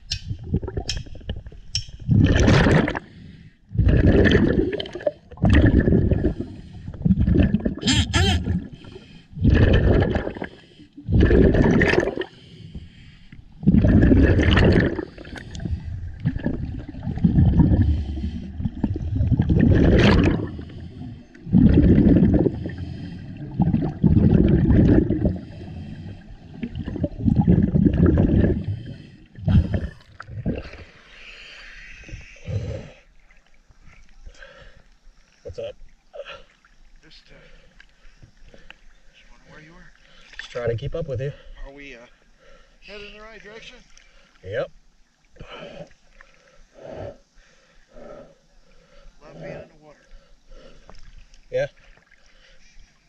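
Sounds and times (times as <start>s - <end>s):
scuba regulator exhaled bubbles: 0.3s - 3.1s, 3.7s - 12.4s, 13.5s - 33.0s.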